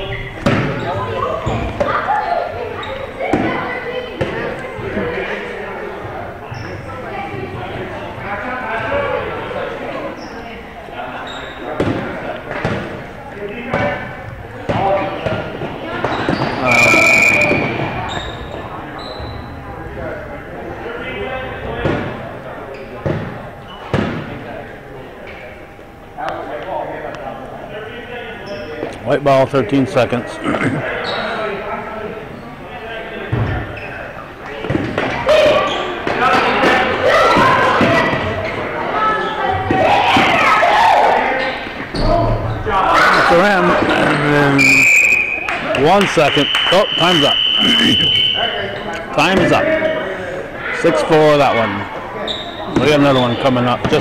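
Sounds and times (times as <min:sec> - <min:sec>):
voices of players and spectators: 0:00.0 - 0:54.0.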